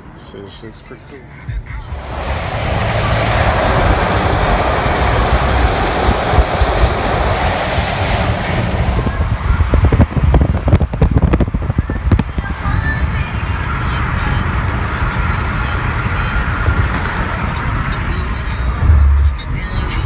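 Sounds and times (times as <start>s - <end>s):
car road and wind noise: 0.0s - 20.0s.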